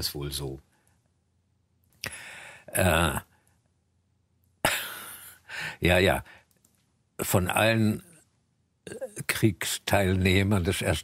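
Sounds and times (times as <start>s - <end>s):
man coughing: 4.6s - 5.4s.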